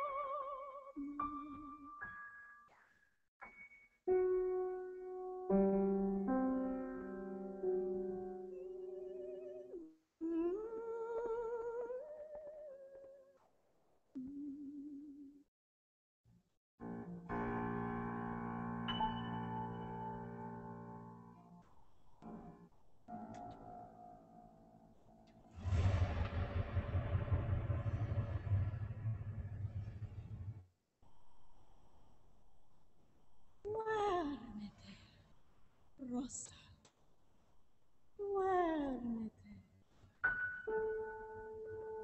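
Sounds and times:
woman singing wordless notes: 10.2s - 12.3s.

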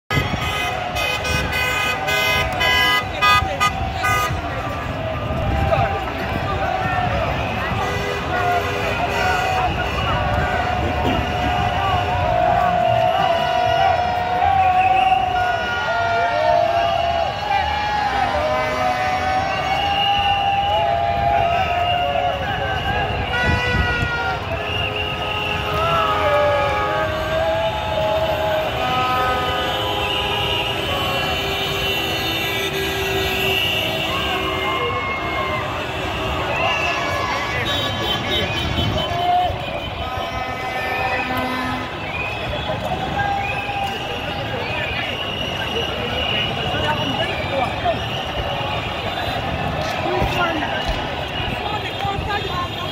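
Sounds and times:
traffic noise: 0.0s - 52.9s
car horns honking: 0.1s - 4.6s, 23.2s - 27.4s, 28.4s - 35.0s, 37.3s - 42.4s
crowd of voices: 0.1s - 52.9s
horns blasting: 0.1s - 52.9s.

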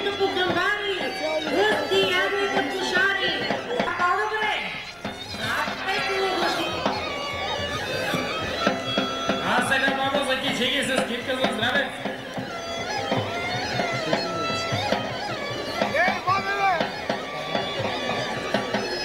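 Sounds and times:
crowd voices: 0.0s - 19.0s
droning bagpipe melody: 0.0s - 19.0s.

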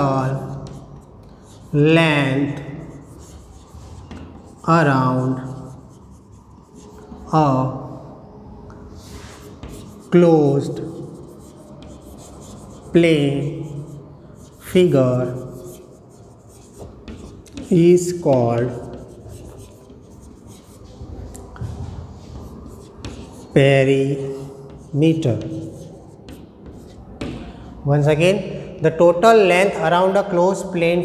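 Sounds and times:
chalk scratching on chalkboard: 0.0s - 7.4s, 8.9s - 27.5s.

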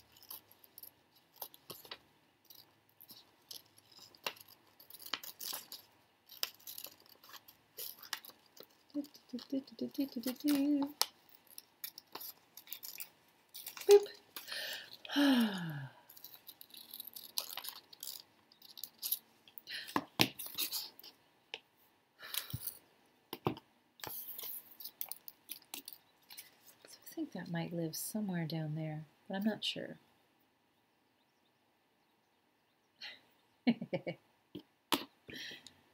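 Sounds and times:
paper rustling: 0.0s - 15.0s
person sighing: 13.9s - 16.1s.

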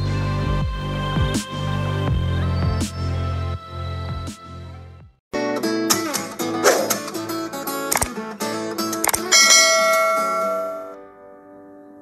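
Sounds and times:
quick clicks: 7.9s - 8.2s, 9.0s - 9.3s
bright bell chime: 9.3s - 11.0s.

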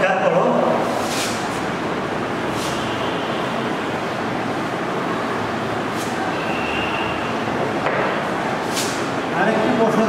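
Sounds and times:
loud rushing noise: 0.3s - 10.0s.

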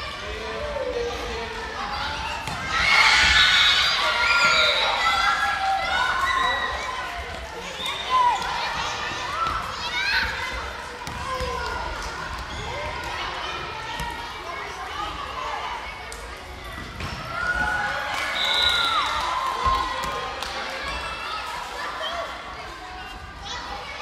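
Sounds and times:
children shouting: 2.4s - 15.9s
ball bouncing on hall floor: 11.0s - 13.2s.

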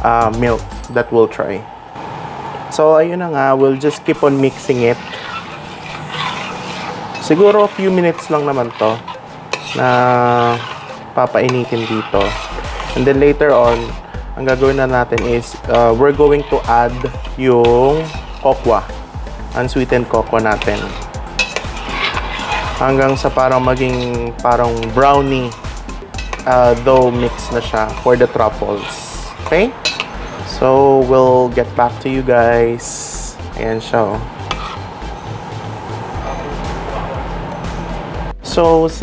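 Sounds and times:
steady background hiss: 0.0s - 38.3s
person speaking: 2.8s - 5.4s, 6.2s - 9.1s, 9.7s - 21.1s, 22.4s - 25.6s, 26.4s - 29.8s
metal spoon stirring in a pot: 3.6s - 30.6s, 34.4s - 35.4s.

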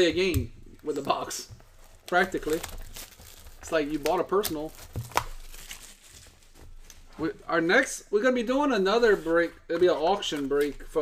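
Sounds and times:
plastic shrink wrap crinkling: 0.2s - 7.3s.

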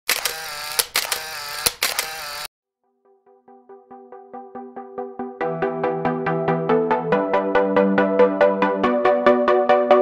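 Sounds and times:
camera shutter clicks: 0.1s - 2.5s
mechanical film winder whir: 0.1s - 2.5s.

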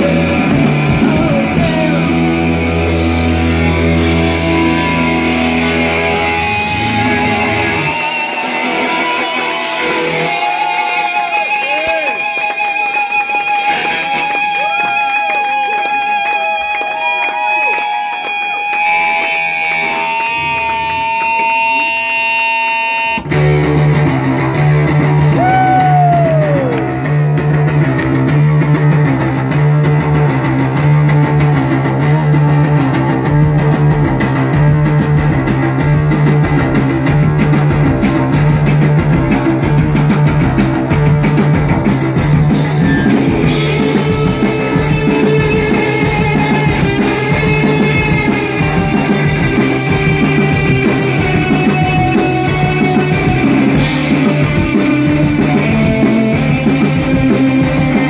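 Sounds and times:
electric bass riff: 0.0s - 16.8s, 18.1s - 58.0s
electric guitar feedback: 0.0s - 58.0s
live rock band: 0.0s - 58.0s.

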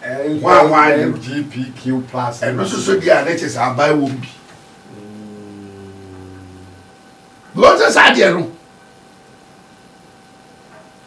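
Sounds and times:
man humming: 4.8s - 7.1s.

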